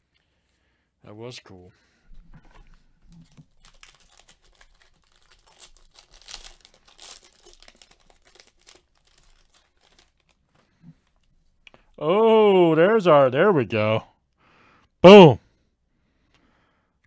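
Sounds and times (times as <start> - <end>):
foil wrapper crinkling and tearing: 3.1 - 11.3.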